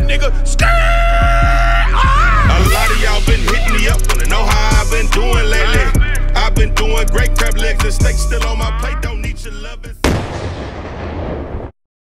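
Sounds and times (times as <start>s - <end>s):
explosion blast with rumbling tail: 10.0s - 11.8s.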